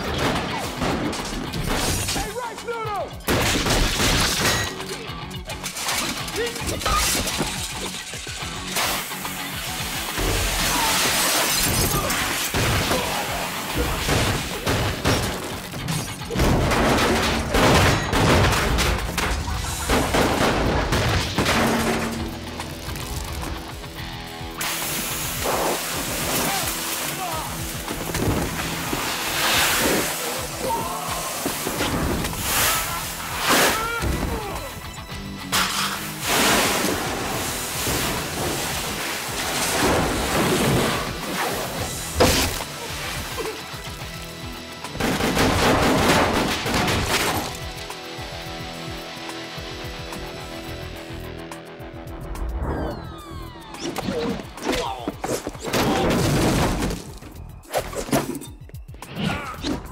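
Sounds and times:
action music score: 0.0s - 59.9s
glass shattering: 0.1s - 2.3s, 3.2s - 9.3s, 10.1s - 23.4s
wordless voices: 2.1s - 3.2s, 6.2s - 7.0s, 26.4s - 27.6s, 30.0s - 31.6s, 54.0s - 56.2s, 59.1s - 59.8s
hits and crashes: 3.2s - 9.4s, 10.0s - 23.9s, 24.6s - 43.9s, 53.9s - 58.4s.

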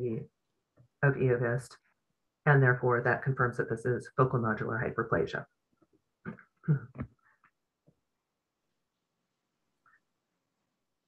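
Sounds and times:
woman clearing her throat: 6.3s - 7.1s.

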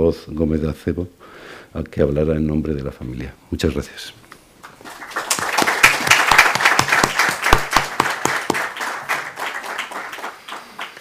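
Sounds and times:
audience applauding: 4.6s - 11.0s.

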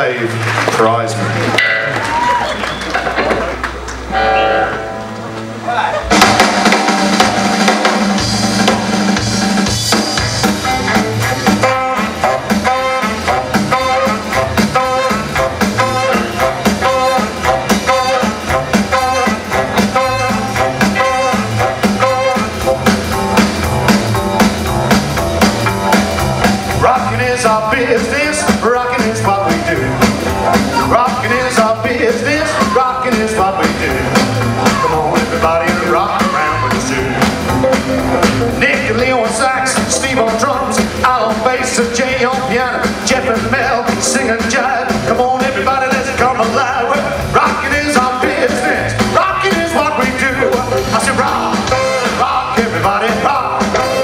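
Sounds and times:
live rockabilly band playing: 0.0s - 54.0s.

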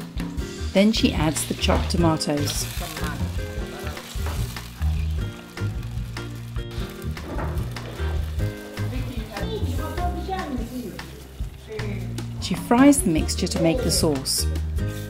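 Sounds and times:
background music: 0.0s - 15.0s
vegetables sizzling in oil: 0.3s - 15.0s
wooden spoon stirring pot: 1.4s - 9.4s.

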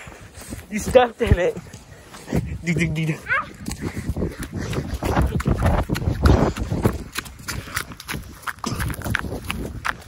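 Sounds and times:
running footsteps on dry leaves: 0.0s - 10.0s
wind noise on microphone: 0.0s - 10.0s.

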